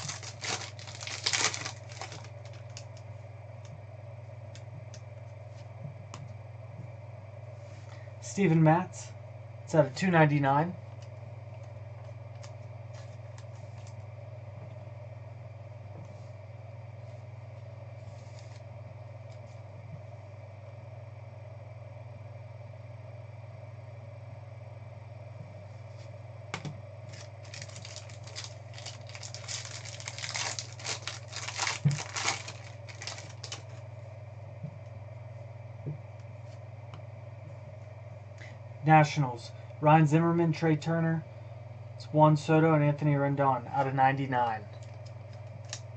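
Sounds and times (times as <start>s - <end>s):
low electrical hum: 0.0s - 45.9s.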